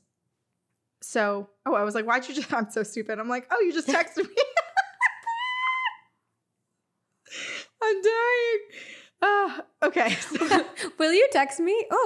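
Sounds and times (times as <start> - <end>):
woman squealing with laughter: 4.2 - 6.1.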